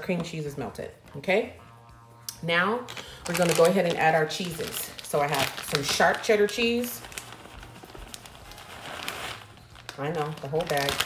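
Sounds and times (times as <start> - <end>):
plastic bag crinkling: 2.9 - 11.0.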